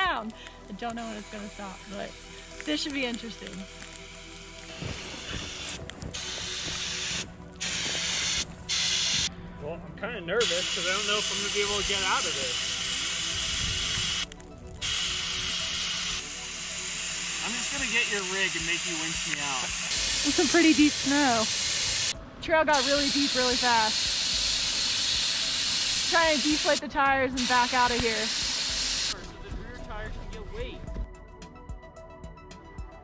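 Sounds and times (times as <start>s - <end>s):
background music: 0.0s - 33.0s
air hissing from tire valve: 0.5s - 2.9s, 3.6s - 9.4s, 10.4s - 22.2s, 22.8s - 26.8s, 27.4s - 29.2s
person speaking: 20.2s - 21.5s.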